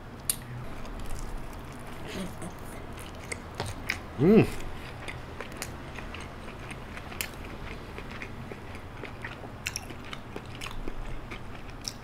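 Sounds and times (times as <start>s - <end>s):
close-up chewing with crackles: 0.2s - 4.0s, 4.6s - 12.0s.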